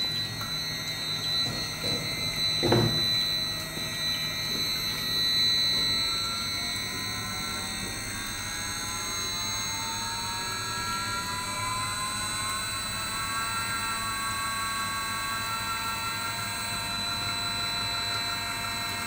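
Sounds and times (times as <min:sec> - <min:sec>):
motor whining: 0:00.0 - 0:16.5
cooling fans whirring: 0:00.0 - 0:19.0.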